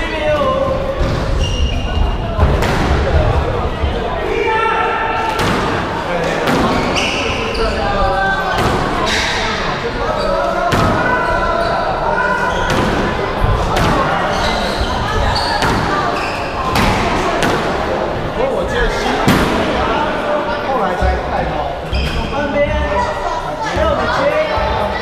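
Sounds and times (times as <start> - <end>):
shoes squeaking on wooden floor: 6.6 - 8.5, 9.1 - 16.8, 21.8 - 22.7.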